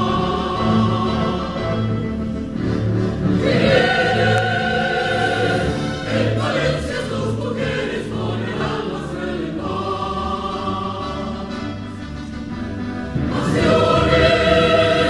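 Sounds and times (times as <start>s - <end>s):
mixed choir singing: 0.0s - 2.4s, 3.2s - 12.1s, 13.1s - 15.0s.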